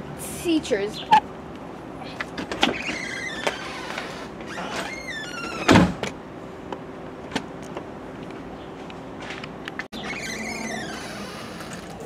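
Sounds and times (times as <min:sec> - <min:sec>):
door hinge squealing: 0:02.6 - 0:05.9, 0:10.0 - 0:11.9.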